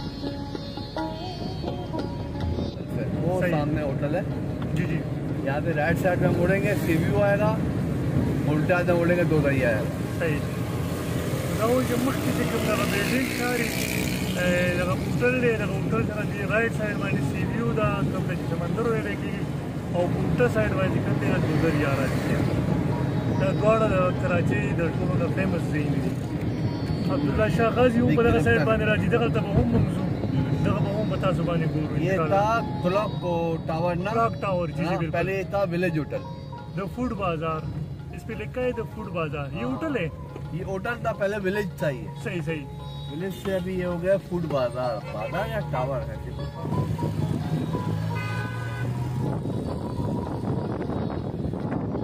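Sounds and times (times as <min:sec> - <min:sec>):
car engine and tyres rumbling: 0:00.0 - 0:52.0
traffic noise: 0:00.0 - 0:52.0
man talking: 0:02.8 - 0:07.7, 0:08.4 - 0:10.6, 0:11.5 - 0:22.5, 0:23.4 - 0:26.2, 0:27.0 - 0:46.8
vehicle horn: 0:47.3 - 0:49.2.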